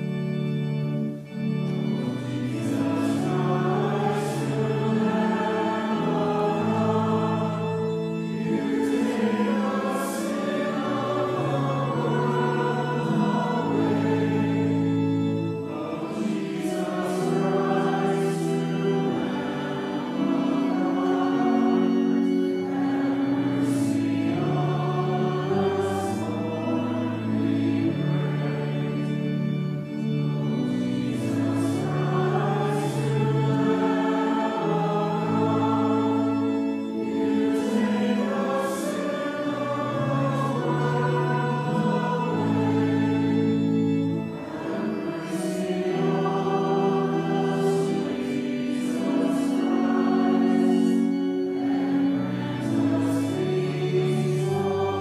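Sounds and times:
group singing a slow chant: 2.0 - 55.0.

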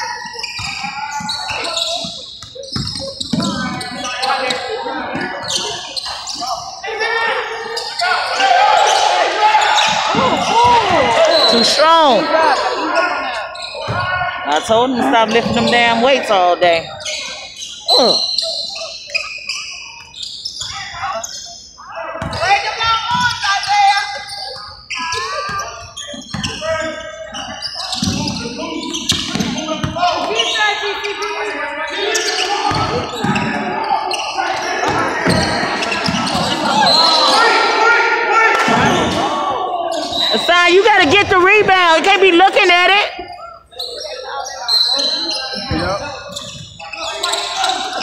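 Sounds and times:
echoing chatter: 0.0 - 48.0.

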